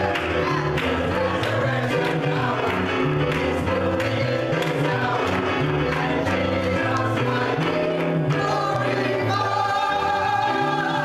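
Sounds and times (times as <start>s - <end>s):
hands clapping in time: 0.0s - 7.4s
electric keyboard: 0.0s - 11.0s
gospel choir singing: 0.0s - 11.0s.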